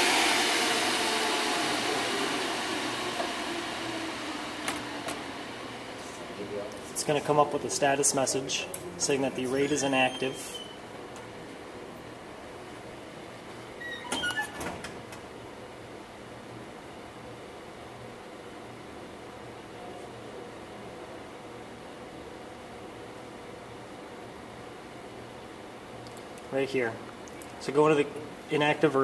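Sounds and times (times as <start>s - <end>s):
server cooling fans humming: 0.0s - 29.0s.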